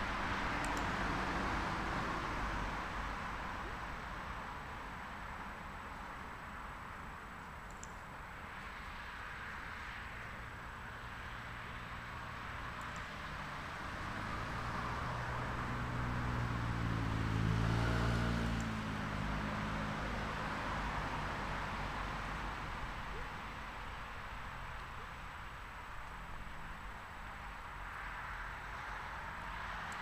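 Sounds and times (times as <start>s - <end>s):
vehicle engine passing by: 13.1s - 22.9s.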